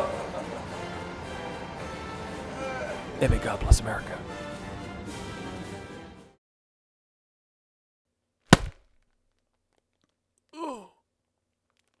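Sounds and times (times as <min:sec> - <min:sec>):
person groaning: 0:02.6 - 0:03.0, 0:10.6 - 0:11.0
sharp smack: 0:08.5 - 0:08.8.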